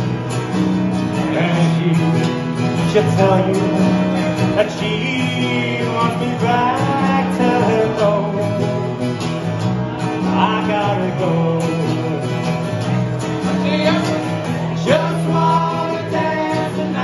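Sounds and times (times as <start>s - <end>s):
acoustic guitars strumming: 0.0s - 17.0s
man singing: 1.1s - 9.1s, 10.0s - 17.0s.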